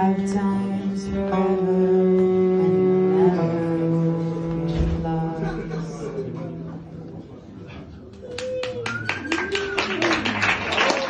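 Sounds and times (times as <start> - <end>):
audience applause: 8.2 - 11.0.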